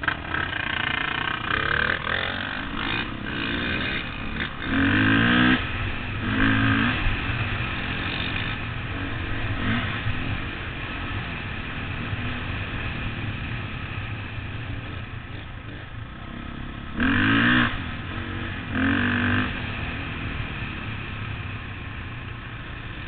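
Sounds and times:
dirt bike engine revving: 0:00.0 - 0:21.3.

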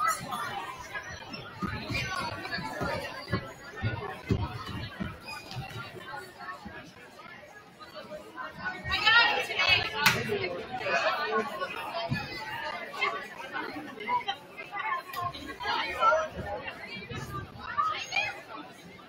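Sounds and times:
people chatting in a hall: 0:00.0 - 0:19.0.

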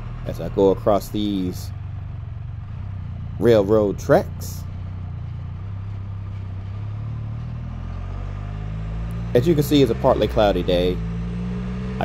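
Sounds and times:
engine low even drone: 0:00.0 - 0:12.0.

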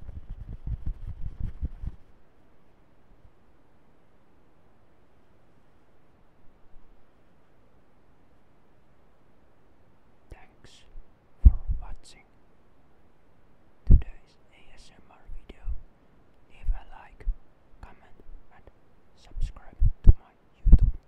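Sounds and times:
low microphone pops: 0:00.0 - 0:02.1, 0:11.0 - 0:12.0, 0:13.9 - 0:14.2, 0:19.3 - 0:21.0
person whispering into a microphone: 0:10.3 - 0:12.3, 0:13.9 - 0:15.8, 0:16.5 - 0:21.0.

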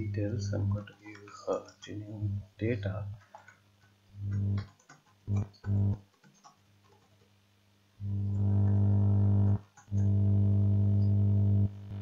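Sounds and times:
low electrical buzz: 0:00.0 - 0:03.2, 0:04.0 - 0:06.0, 0:07.8 - 0:12.0
faint keyboard clicks: 0:00.8 - 0:02.0, 0:03.1 - 0:07.3, 0:09.6 - 0:10.1.

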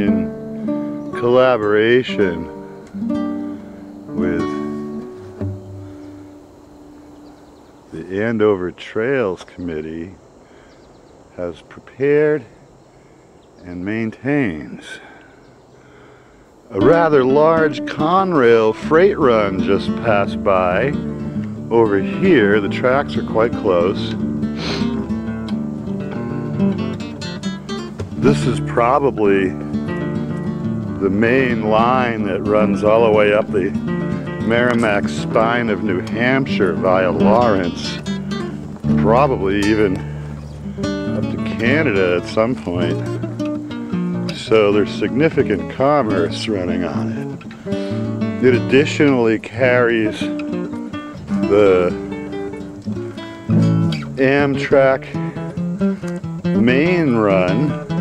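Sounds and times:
acoustic guitar strumming: 0:00.0 - 0:08.2, 0:16.7 - 0:58.0.

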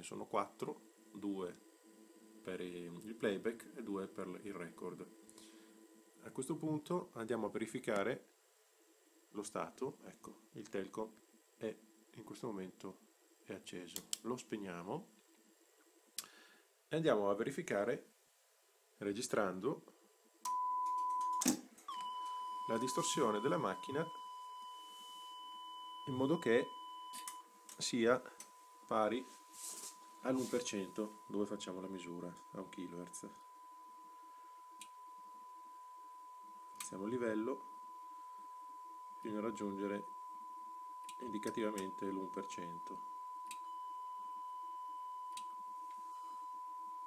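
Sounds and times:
steady test tone: 0:20.5 - 0:47.0.

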